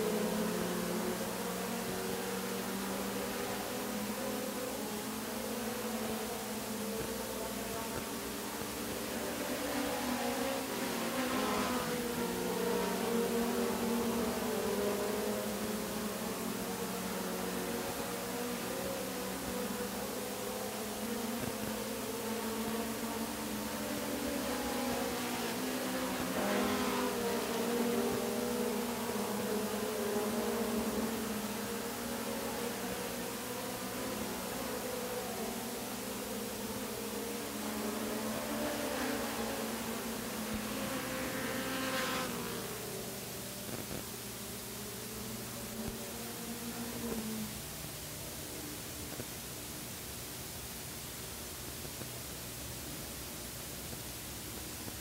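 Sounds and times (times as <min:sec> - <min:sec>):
race car engines passing: 0:00.0 - 0:44.0.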